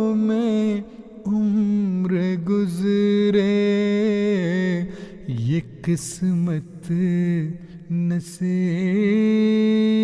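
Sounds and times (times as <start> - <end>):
man singing melismatically: 0.0 - 10.0.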